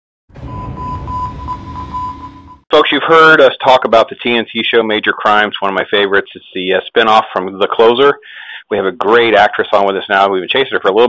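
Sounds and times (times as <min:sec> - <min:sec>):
rumbling wash of noise: 0:00.4 - 0:02.5
steady beep-like tone: 0:00.4 - 0:02.6.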